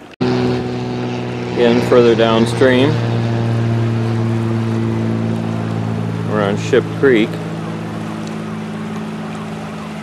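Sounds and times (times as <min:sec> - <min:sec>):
steady low engine-like hum: 0:00.0 - 0:10.0
creek rushing over gravel: 0:01.2 - 0:10.0.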